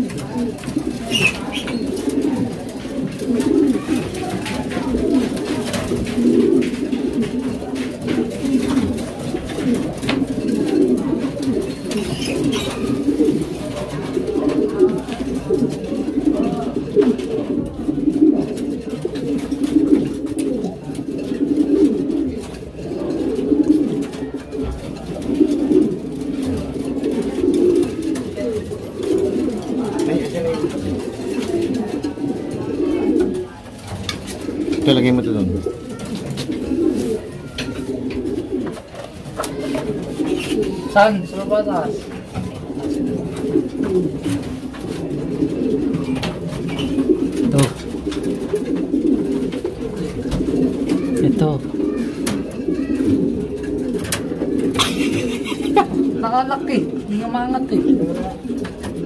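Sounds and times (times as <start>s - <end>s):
pigeons cooing: 0.0s - 59.0s.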